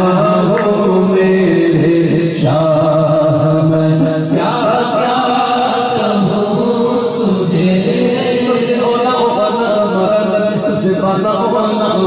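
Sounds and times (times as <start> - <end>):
man singing unaccompanied: 0.0 - 12.0.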